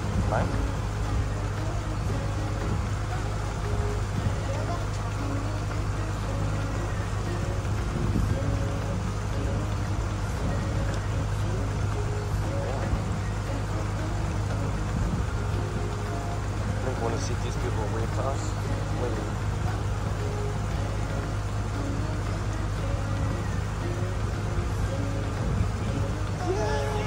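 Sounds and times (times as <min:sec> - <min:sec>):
background music: 0:00.0 - 0:27.0
boat engine humming: 0:00.0 - 0:27.0
voices: 0:00.0 - 0:27.0.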